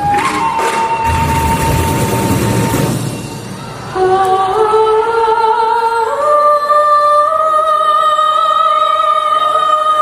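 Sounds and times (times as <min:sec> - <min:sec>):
person singing long held notes: 0:03.9 - 0:10.0.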